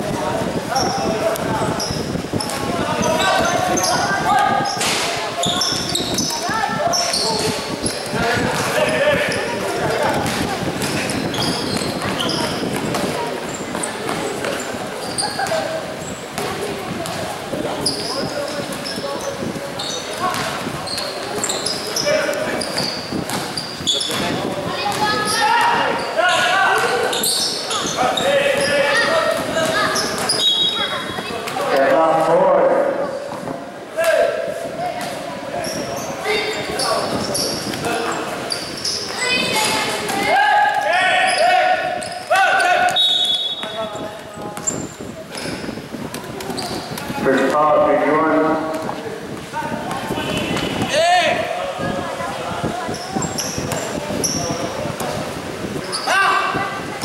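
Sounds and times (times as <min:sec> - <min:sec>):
sneakers squeaking on floor: 0:00.6 - 0:31.8, 0:34.9 - 0:40.3, 0:41.1 - 0:47.6, 0:52.6 - 0:55.2, 0:55.8 - 0:56.7
basketball bouncing on court: 0:10.1 - 0:14.6, 0:20.1 - 0:22.0, 0:22.6 - 0:25.4
people shouting: 0:40.1 - 0:43.0.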